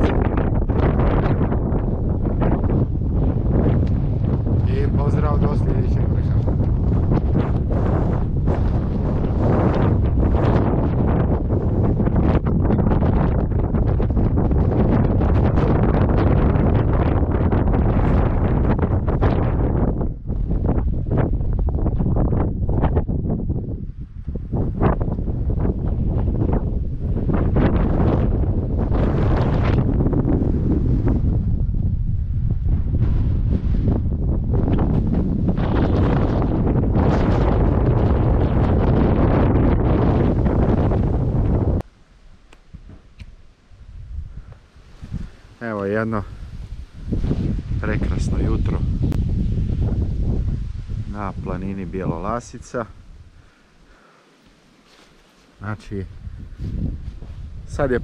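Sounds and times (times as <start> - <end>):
strong wind buffeting microphone: 0.0 - 54.1, 54.9 - 58.0.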